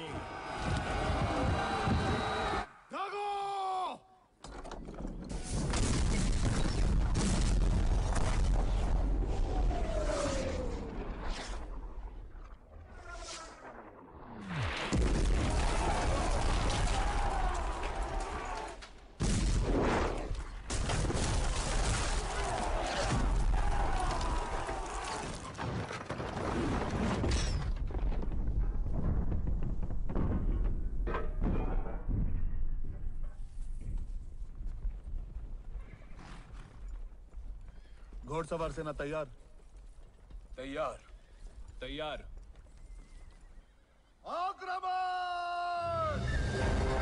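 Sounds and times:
blasts and crashing: 5.2 - 18.2.

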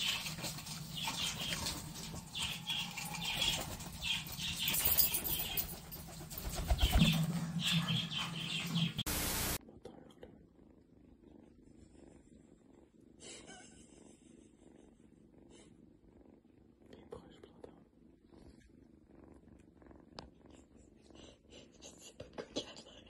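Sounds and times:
kitten purring: 0.0 - 7.1, 9.0 - 23.0.

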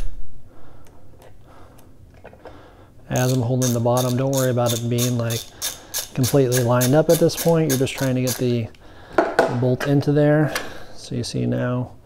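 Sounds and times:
ratchet clicking: 3.2 - 8.6.

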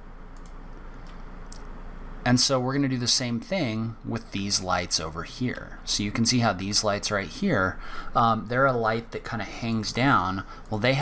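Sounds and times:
low room hum: 0.0 - 11.0
computer mouse clicks: 0.3 - 1.7.

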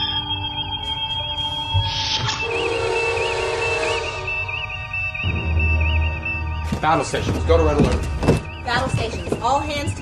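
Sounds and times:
low held tone: 0.0 - 6.8.

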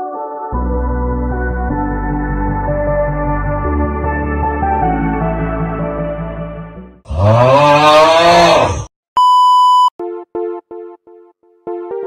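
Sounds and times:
man's rough drawn-out vocal sound: 7.1 - 8.9
electronic beep: 9.2 - 9.9.

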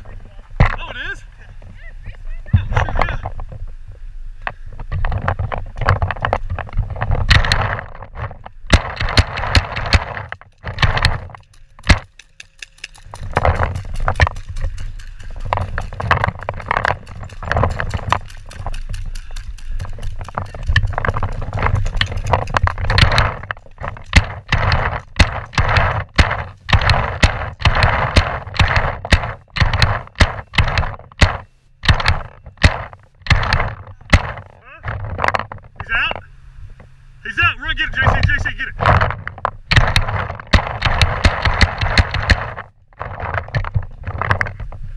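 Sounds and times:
paintballs hitting bunkers: 0.6 - 1.1, 4.9 - 36.2, 38.0 - 44.7
paintball markers firing: 8.7 - 34.5, 38.2 - 43.6.

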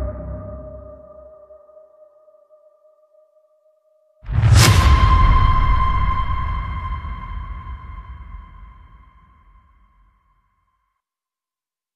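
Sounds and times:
low rumble: 4.3 - 9.5.

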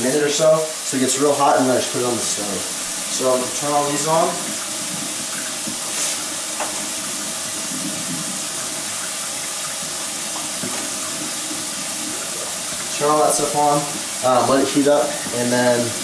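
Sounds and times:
tap water running into sink: 0.0 - 16.0.

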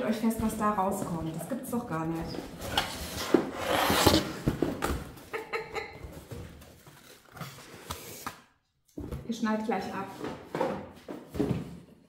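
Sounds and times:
cardboard scraping and rustling: 2.4 - 4.8.

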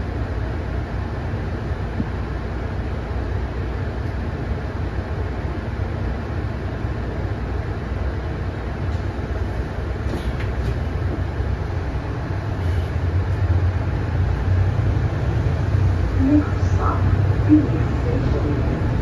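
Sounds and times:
bus diesel engine rumble: 0.0 - 19.0.

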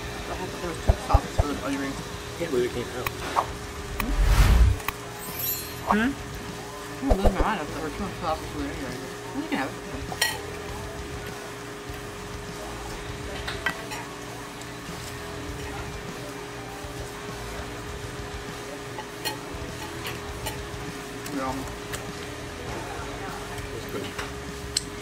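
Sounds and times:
quiet background music: 0.0 - 25.0
steady low hum: 3.6 - 4.9.

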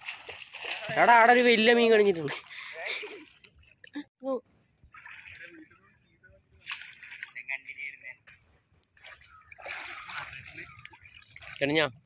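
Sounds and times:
water splashing from hauled net: 0.0 - 1.6, 4.9 - 5.6, 6.6 - 7.6, 9.0 - 11.8.

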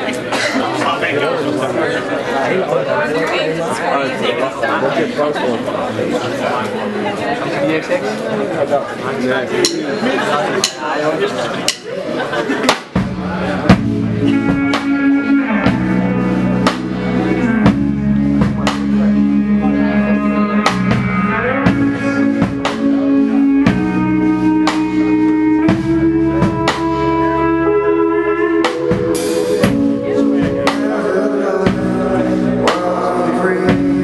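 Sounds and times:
drum kit with cymbal hits: 9.6 - 10.0, 10.6 - 11.0, 11.6 - 34.0
live rock band playing: 11.6 - 34.0
bass guitar: 12.9 - 34.0
electric guitar chords: 13.0 - 34.0.

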